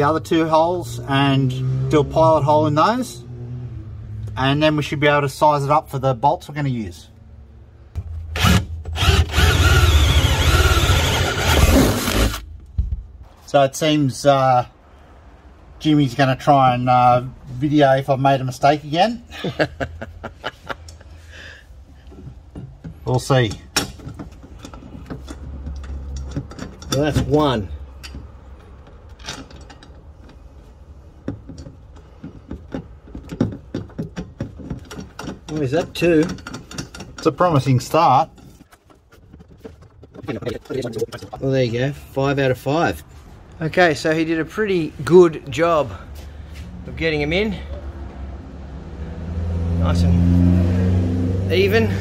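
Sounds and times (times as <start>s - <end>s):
cordless drill boring through sheet metal: 8.4s - 12.4s.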